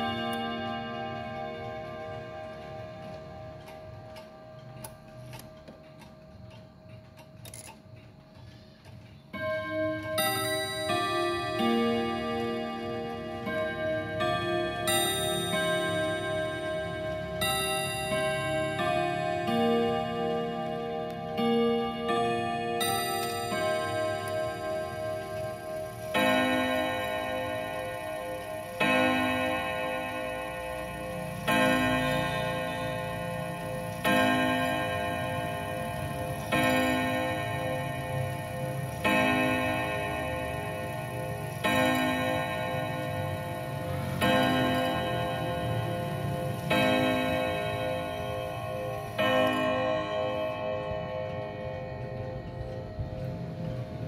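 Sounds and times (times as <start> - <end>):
clock chime notes: 0.0 - 7.7, 8.8 - 54.0
wall clock striking on gong: 0.0 - 8.0, 9.2 - 54.0.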